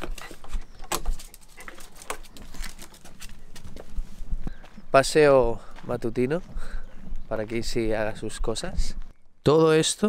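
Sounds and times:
small dog scuffling: 0.0 - 4.2
shoes scuffing on stone floor: 0.0 - 4.8.

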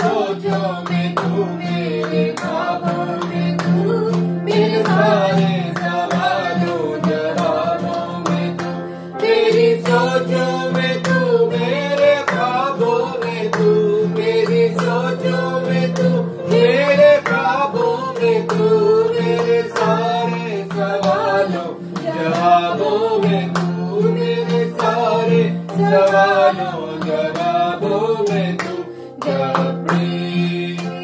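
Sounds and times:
guitar: 0.0 - 31.0
man and woman singing: 0.0 - 31.0.

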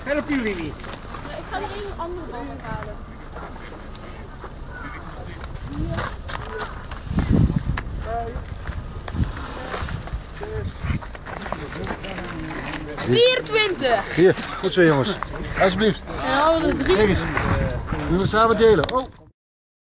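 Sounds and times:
indistinct voices talking: 0.0 - 19.3.

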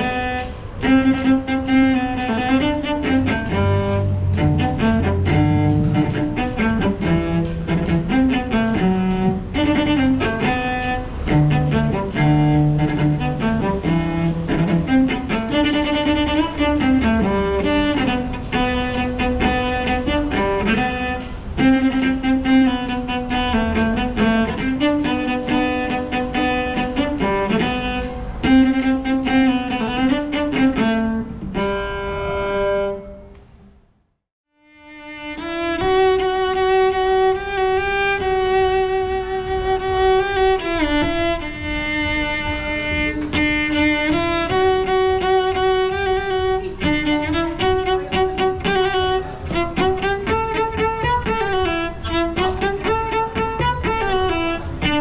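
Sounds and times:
bowed cello melody: 0.0 - 33.4, 34.6 - 55.0.

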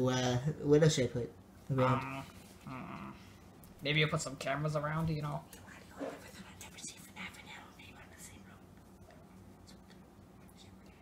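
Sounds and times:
low steady hum: 0.0 - 11.0
faint whispering: 5.5 - 11.0.

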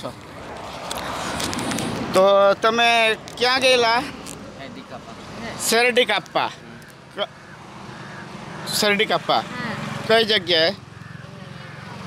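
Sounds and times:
motorcycle engine approaching: 7.4 - 12.0.

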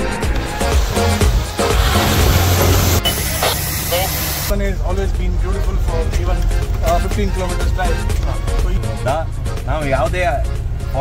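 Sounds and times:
vehicle engine running: 0.5 - 11.0
man talking: 3.9 - 11.0.

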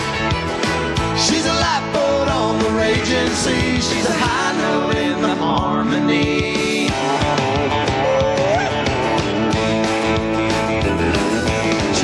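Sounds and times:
live country rock band: 0.0 - 12.0
sliding lead guitar note: 6.8 - 12.0.

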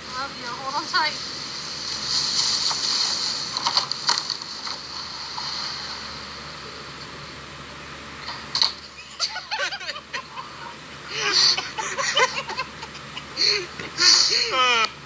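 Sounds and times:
kayak scraping dry leaves: 1.6 - 5.6.

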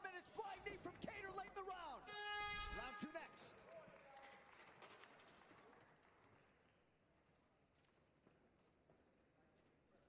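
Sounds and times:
horn sustained tone: 2.1 - 3.2.

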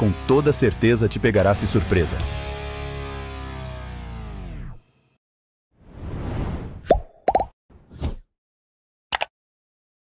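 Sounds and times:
whoosh: 5.8 - 6.8
cartoon pops: 6.8 - 7.5
brief swish: 7.9 - 8.3.

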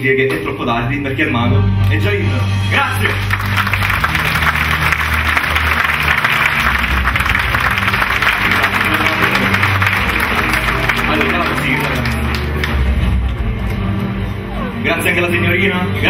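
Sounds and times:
background music with bass line: 1.3 - 16.0
audience applauding: 3.0 - 14.0.

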